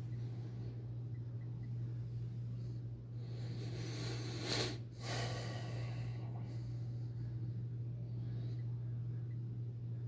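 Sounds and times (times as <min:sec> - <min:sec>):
steady low hum: 0:00.0 - 0:10.0
person sniffing and breathing: 0:03.2 - 0:06.3.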